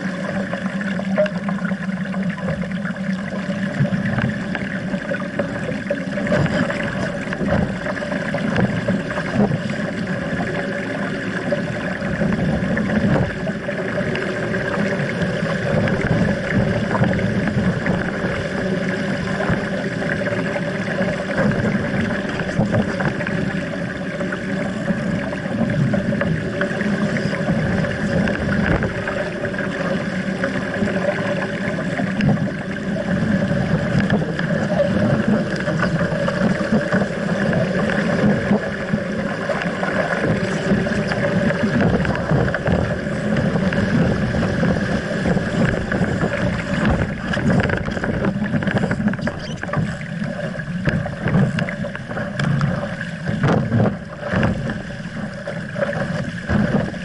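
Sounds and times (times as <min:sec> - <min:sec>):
water rushing along a hull: 0:00.0 - 0:57.0
wind on microphone: 0:06.2 - 0:57.0.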